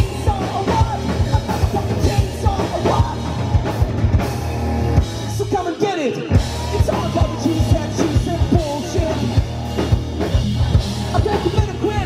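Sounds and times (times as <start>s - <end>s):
electric guitar: 0.0s - 12.0s
live rock band: 0.0s - 12.0s.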